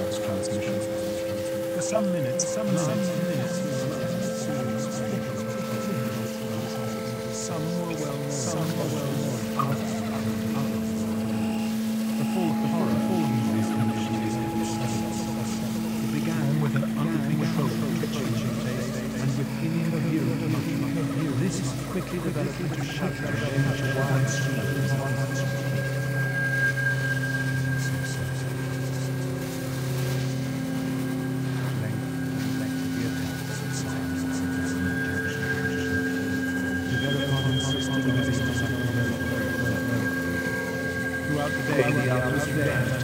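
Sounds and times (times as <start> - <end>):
synthesizer drone: 0.0 - 43.0
thin high whistling tone: 0.0 - 43.0.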